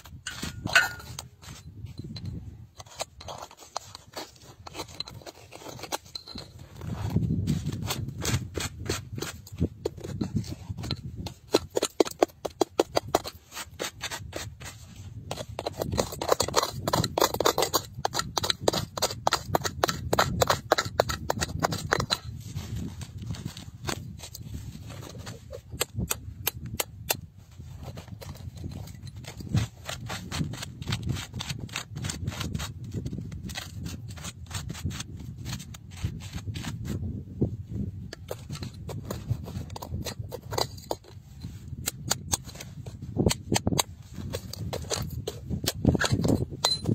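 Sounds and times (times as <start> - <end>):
gritty scraping of dirt: 0.0 - 46.9
metal tool clicking on stone: 0.2 - 1.2, 43.2 - 46.9.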